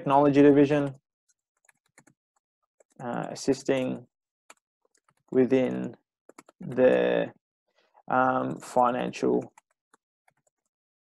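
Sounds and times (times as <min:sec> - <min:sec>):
faint keyboard typing: 0:01.3 - 0:03.8, 0:04.5 - 0:07.3, 0:09.2 - 0:10.7.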